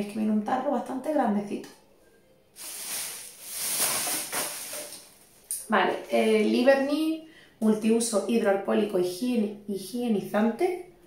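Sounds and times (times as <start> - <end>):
hands rummaging with dry rustling: 2.6 - 5.5.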